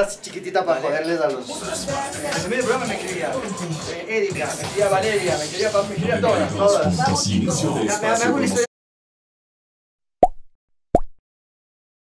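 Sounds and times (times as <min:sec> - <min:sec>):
pop sound effects: 0:10.2 - 0:11.2.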